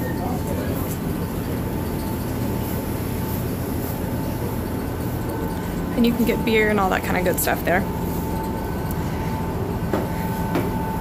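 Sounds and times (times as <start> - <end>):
constant high whining tone: 0.0 - 11.0
ferry engines rumbling: 0.0 - 11.0.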